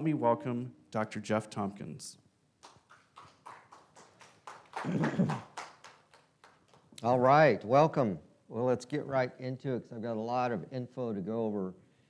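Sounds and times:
light applause: 0:02.6 - 0:07.0.

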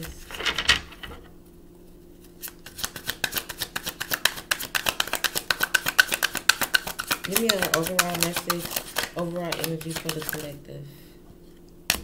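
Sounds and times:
cards being shuffled: 0:02.2 - 0:10.6.

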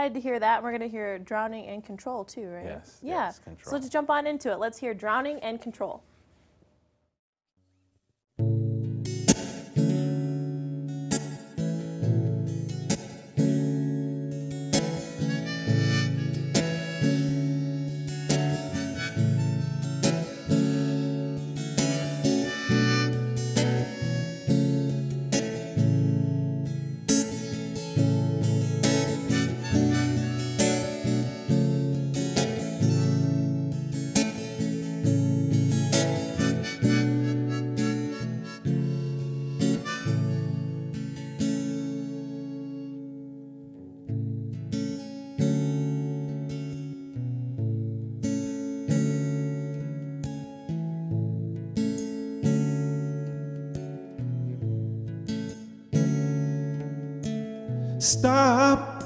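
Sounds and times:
acoustic guitar strumming: 0:08.4 - 0:59.0
harmonica playing: 0:15.0 - 0:25.4, 0:28.7 - 0:33.5, 0:36.0 - 0:43.2.

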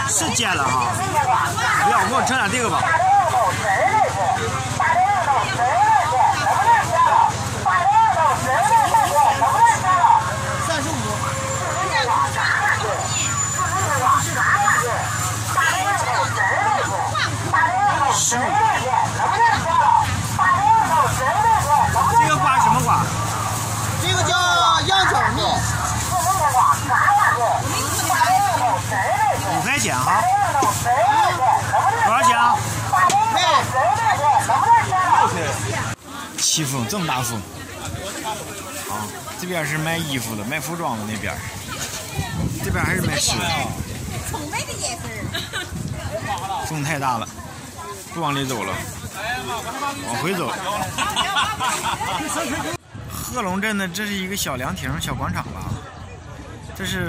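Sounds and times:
voices talking: 0:00.0 - 0:57.0
wind rumble on microphone: 0:41.4 - 0:46.7, 0:54.6 - 0:57.0.

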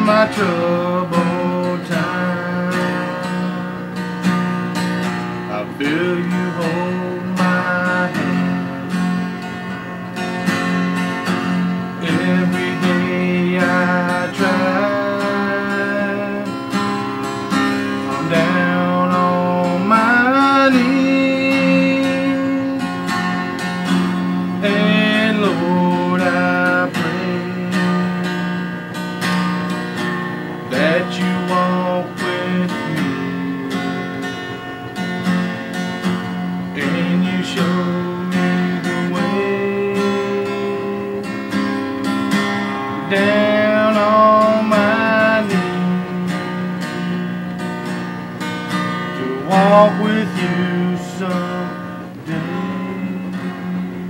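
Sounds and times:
acoustic guitar strummed and picked: 0:00.0 - 0:54.0.

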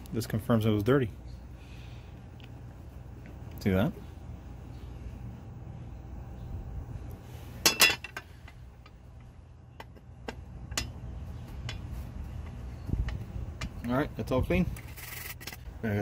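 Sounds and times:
low steady rumble: 0:00.0 - 0:16.0
metal clatter: 0:07.6 - 0:08.6.

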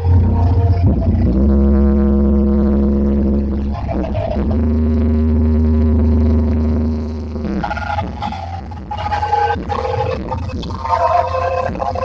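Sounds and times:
loud music with heavy bass: 0:00.0 - 0:12.0.

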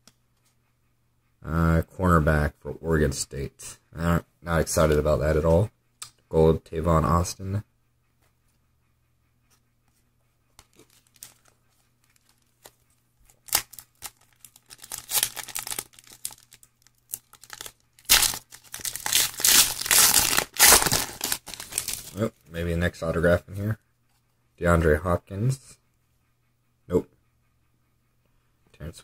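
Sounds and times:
foil wrapper tearing and crinkling: 0:10.8 - 0:11.4, 0:13.3 - 0:22.2.

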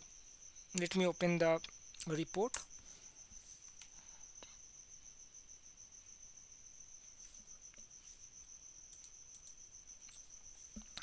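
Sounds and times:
faint clicks: 0:08.9 - 0:10.2.

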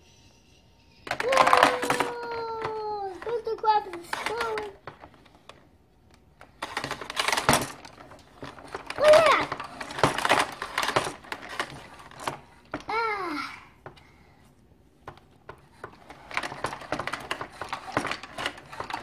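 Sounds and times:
plastic toy parts clicking: 0:01.0 - 0:05.6, 0:06.4 - 0:12.9, 0:15.1 - 0:19.0
child making vocal sounds: 0:01.2 - 0:04.8, 0:12.9 - 0:13.8.

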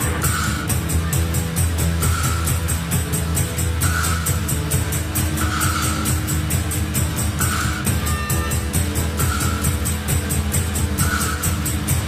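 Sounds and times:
hi-hat ticking: 0:00.0 - 0:12.0
high held guitar tone: 0:00.0 - 0:12.0
post-punk rock instrumental: 0:00.0 - 0:12.0.

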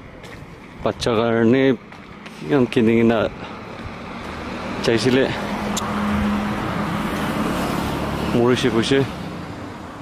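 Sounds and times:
tyre and road noise: 0:00.0 - 0:10.0
vehicle passing: 0:01.6 - 0:10.0.

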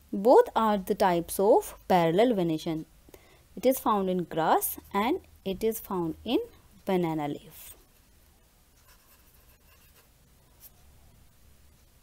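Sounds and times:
marker pen writing on paper: 0:08.8 - 0:10.8.

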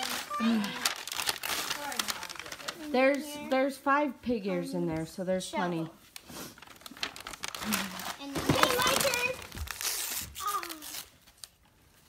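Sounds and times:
wrapping paper crinkling and tearing: 0:00.0 - 0:03.5, 0:06.1 - 0:12.0.

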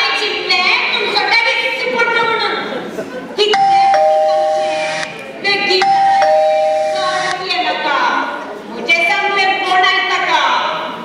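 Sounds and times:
two-tone doorbell chime: 0:03.6 - 0:05.2, 0:05.8 - 0:07.3.

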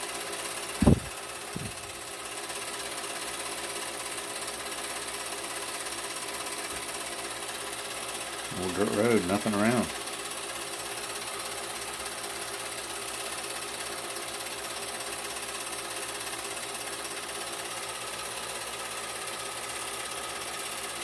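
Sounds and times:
film projector whirring: 0:00.0 - 0:21.0.

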